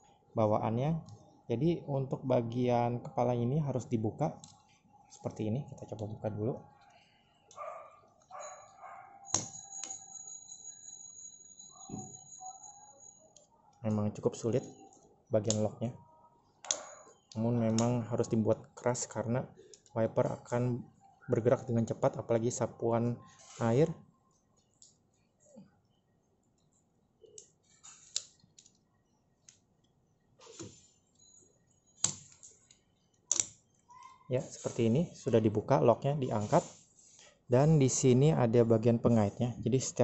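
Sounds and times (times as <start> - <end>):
faint steady high tone: 2.0 - 18.4, 30.7 - 33.1.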